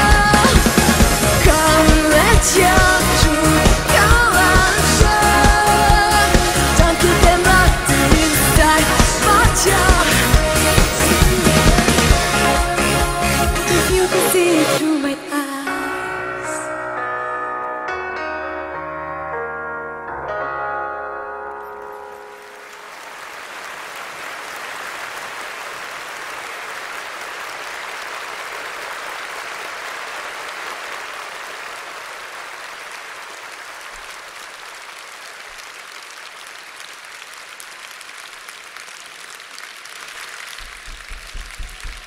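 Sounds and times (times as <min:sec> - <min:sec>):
audience applauding: 0:00.0 - 0:14.5, 0:22.2 - 0:42.0.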